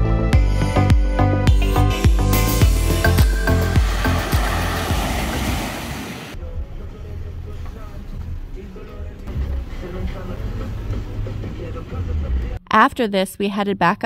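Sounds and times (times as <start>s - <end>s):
waves washing over pebbles: 3.2s - 6.4s.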